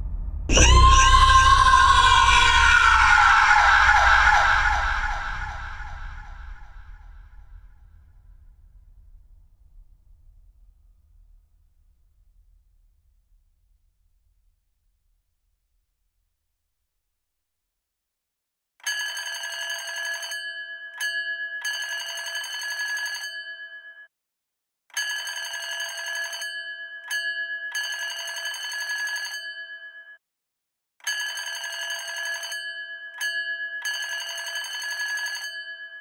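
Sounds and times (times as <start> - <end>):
alarm bell ringing: 18.8 - 24.1, 24.9 - 30.2, 31.0 - 36.0.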